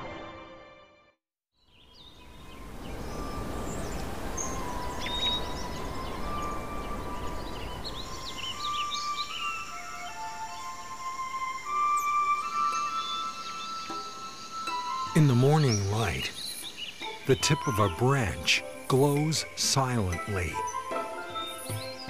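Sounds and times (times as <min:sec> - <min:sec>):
music: 0:00.0 - 0:01.2, 0:02.6 - 0:22.0
background hiss: 0:01.7 - 0:22.0
bird chirps and whistles: 0:03.0 - 0:10.7.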